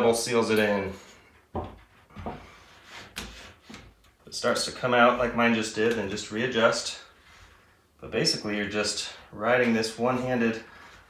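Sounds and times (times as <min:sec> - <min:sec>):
small knocks: 0:01.5 - 0:02.5.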